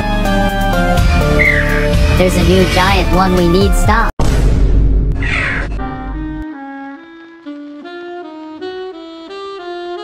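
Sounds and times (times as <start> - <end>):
harsh bird caw: 5.2 - 5.8
saxophone melody: 5.8 - 10.0.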